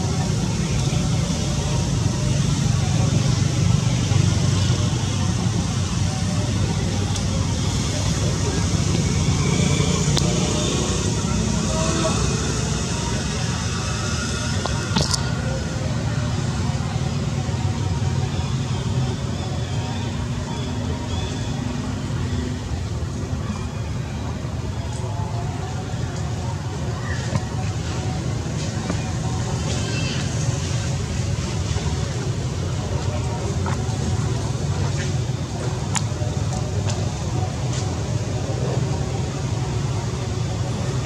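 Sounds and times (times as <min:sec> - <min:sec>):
faint voices: 0:00.0 - 0:41.0
low outdoor rumble: 0:00.0 - 0:41.0.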